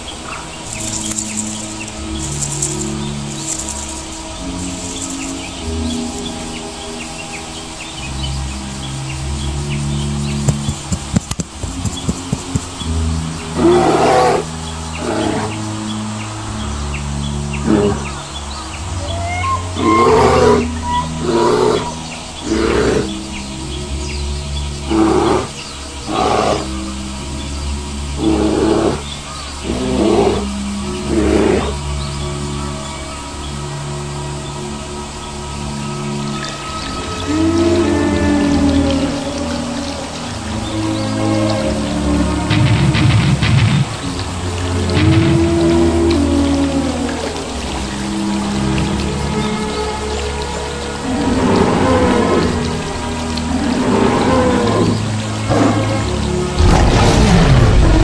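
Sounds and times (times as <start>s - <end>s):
background music: 0.0s - 58.0s
birds chirping: 0.0s - 58.0s.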